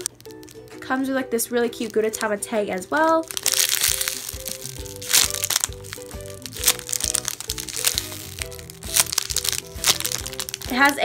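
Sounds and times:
light background music: 0:00.0 - 0:11.0
plastic bag crinkling: 0:00.0 - 0:11.0.

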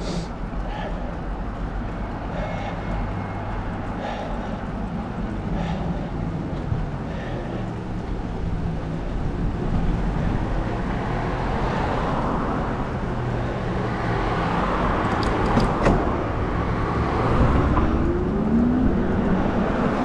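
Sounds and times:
road and wind noise: 0:00.0 - 0:20.0
vehicle engine rising in pitch: 0:16.2 - 0:20.0.

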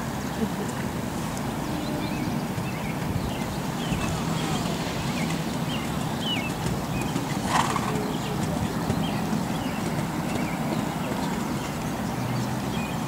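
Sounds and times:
outdoor background noise: 0:00.0 - 0:13.0
horse hoofbeats on sand: 0:01.1 - 0:13.0.

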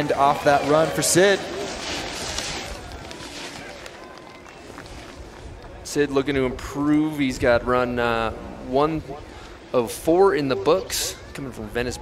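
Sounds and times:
snowboard scraping packed snow: 0:00.0 - 0:05.4.

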